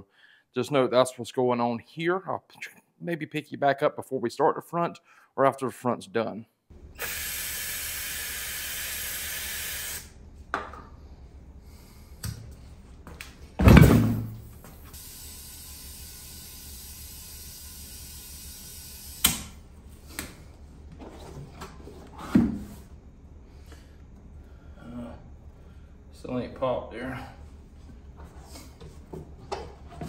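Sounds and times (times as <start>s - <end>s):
loud thump: 13.6s - 14.4s.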